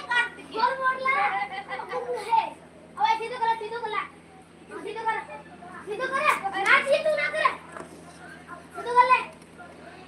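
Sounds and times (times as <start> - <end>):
child talking loudly: 0.0 - 7.7, 8.7 - 9.4.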